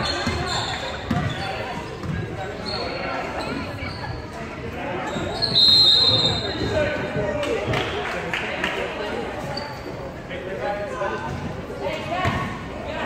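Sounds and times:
voices in echoing hall: 0:00.0 - 0:13.0
referee's whistle blast: 0:05.4 - 0:06.5.

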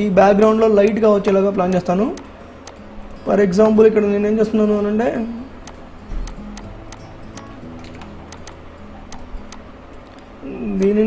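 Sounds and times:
computer mouse clicking: 0:05.6 - 0:10.9.

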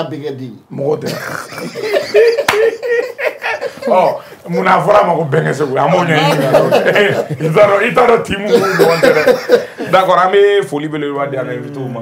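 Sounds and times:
people laughing: 0:01.1 - 0:04.2, 0:06.2 - 0:10.0
man talking: 0:03.7 - 0:12.0.

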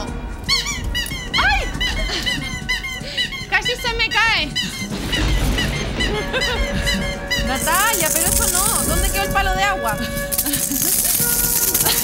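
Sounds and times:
high squeaky chirps: 0:00.0 - 0:12.0.

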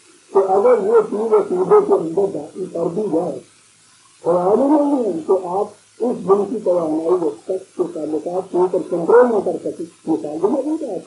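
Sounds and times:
man lecturing: 0:00.3 - 0:03.5, 0:04.2 - 0:11.0.

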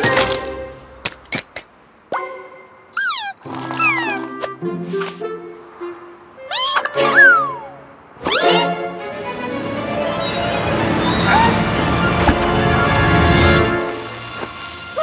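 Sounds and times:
cartoon background music: 0:02.1 - 0:15.0
squeaky creature vocalizations: 0:03.0 - 0:04.4, 0:06.4 - 0:08.8.

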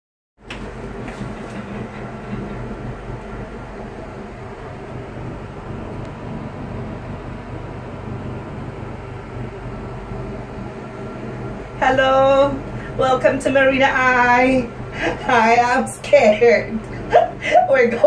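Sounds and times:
mechanical rumble and hum: 0:00.4 - 0:18.0.

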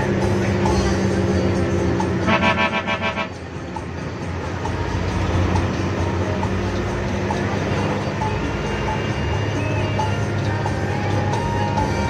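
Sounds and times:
bus engine hum: 0:00.0 - 0:12.0
vehicle horn blast: 0:02.2 - 0:03.4.

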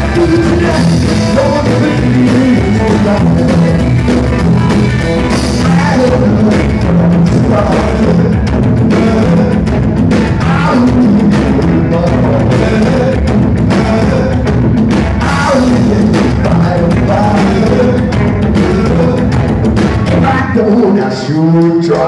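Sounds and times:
upright double bass: 0:00.0 - 0:21.0
drum kit: 0:00.0 - 0:22.0
electric guitar: 0:00.0 - 0:22.0.

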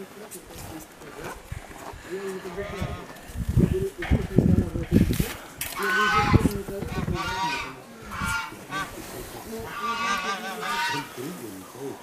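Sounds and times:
honking bird calls: 0:05.8 - 0:11.4.

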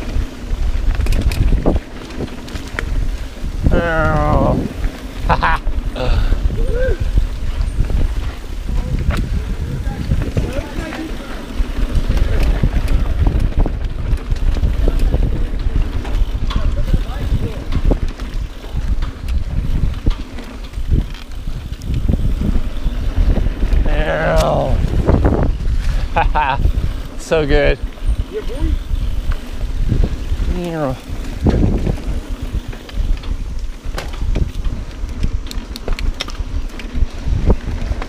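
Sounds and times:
bike rattling and knocking: 0:00.0 - 0:38.0
wind buffeting microphone: 0:00.0 - 0:38.0
person whooping: 0:06.0 - 0:07.2.

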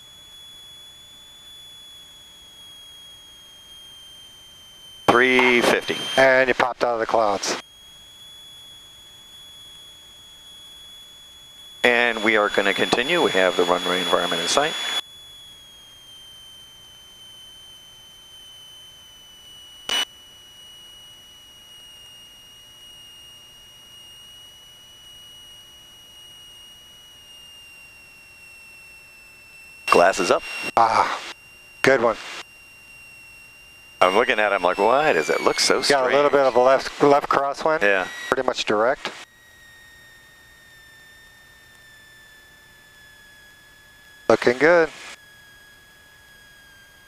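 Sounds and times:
high-pitched electrical whine: 0:00.0 - 0:47.0
high-pitched tone sinking in pitch: 0:00.0 - 0:47.0.

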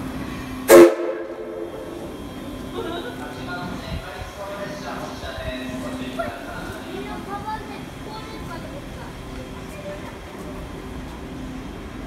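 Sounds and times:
loud steam whistle blast: 0:00.7 - 0:01.7.

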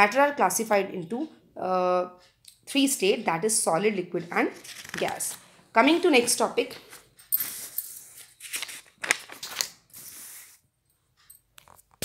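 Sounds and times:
paper pages rustling: 0:04.6 - 0:05.6, 0:06.2 - 0:10.6.

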